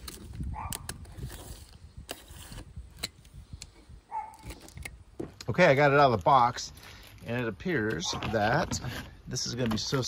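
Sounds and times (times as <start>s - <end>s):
utility knife cutting cardboard: 0.0s - 3.2s
sharp clicks and scrapes: 0.0s - 5.5s.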